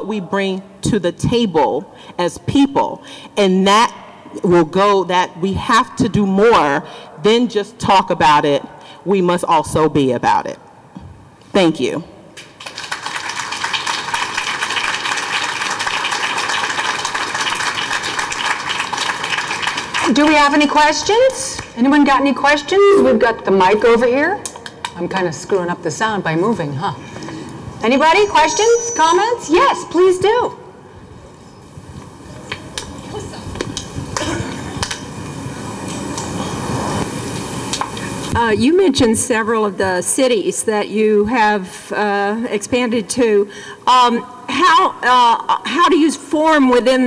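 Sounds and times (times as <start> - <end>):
audience applauding: 12.4 - 20.2.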